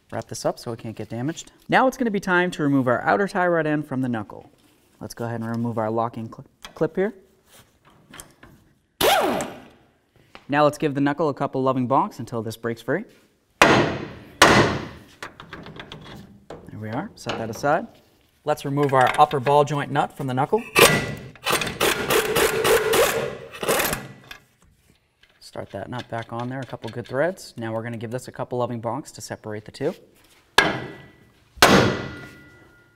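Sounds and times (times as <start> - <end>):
air impact wrench rattling: 20.8 - 24.3
metal clicks and scrapes: 25.2 - 27.5.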